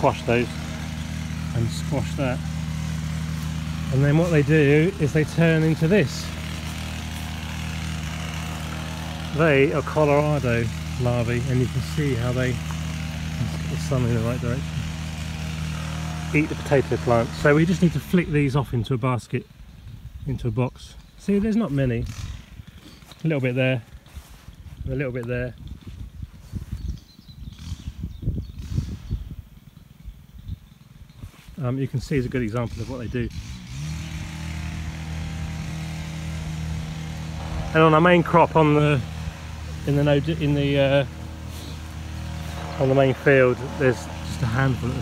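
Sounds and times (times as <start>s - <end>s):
engine running with low drone: 0.0s - 45.0s
wind buffeting microphone: 23.9s - 31.3s.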